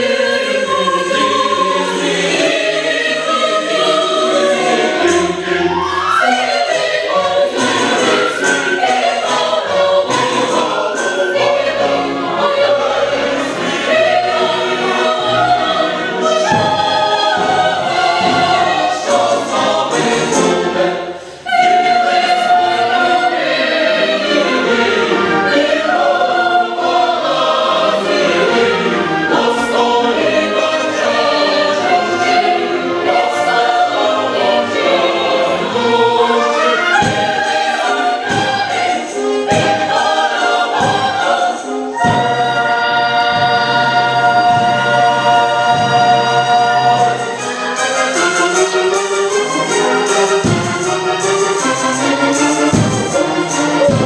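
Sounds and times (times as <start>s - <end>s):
choir singing operatic chorus: 0.0s - 54.0s
orchestral accompaniment: 0.0s - 54.0s.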